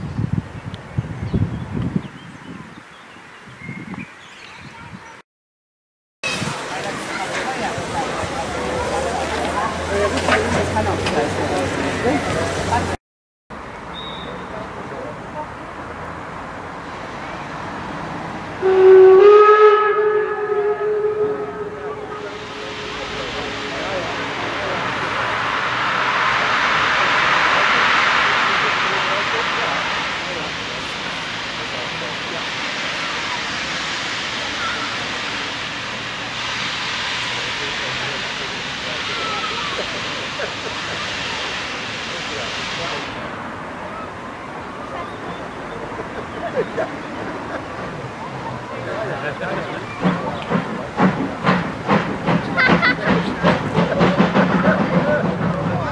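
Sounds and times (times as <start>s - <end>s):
steam whistle blast: 18.6s - 27.5s
steam hissing: 20.6s - 55.9s.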